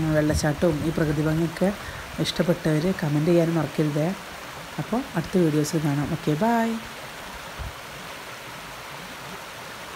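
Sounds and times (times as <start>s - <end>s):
stream water rushing over rocks: 0.0s - 9.9s.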